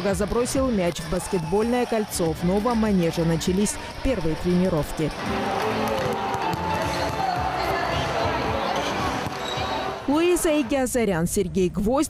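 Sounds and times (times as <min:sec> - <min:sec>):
basketballs bouncing on parquet floor: 0:05.8 - 0:08.1.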